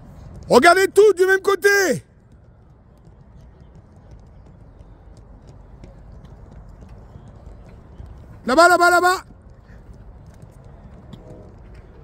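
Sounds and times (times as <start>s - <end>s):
footsteps on athletics field: 0.0s - 12.0s.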